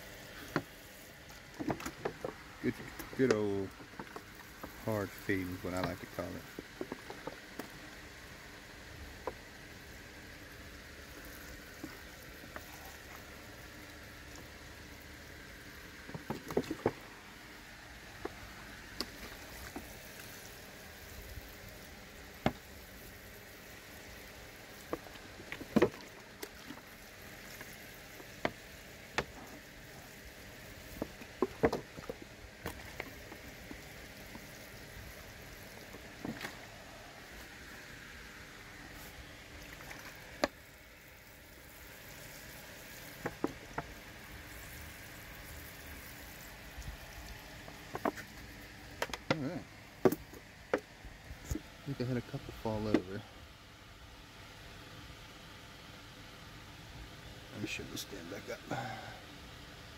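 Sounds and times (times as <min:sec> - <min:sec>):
steady low hiss: 0:00.0 - 0:59.9.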